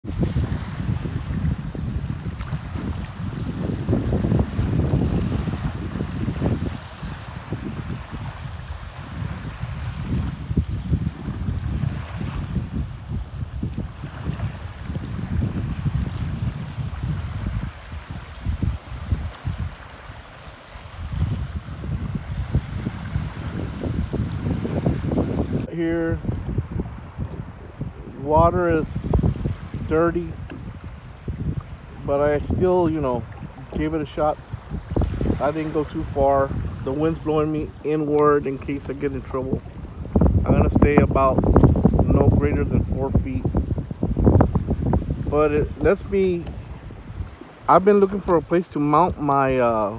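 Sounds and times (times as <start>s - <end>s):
choppy waves washing in: 0.0s - 49.9s
wind buffeting microphone: 0.0s - 49.9s.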